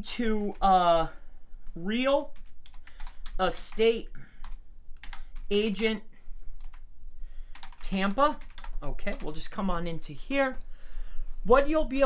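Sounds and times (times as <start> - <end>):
computer keyboard keystrokes: 1.6 - 3.8, 4.4 - 5.5, 7.5 - 9.4.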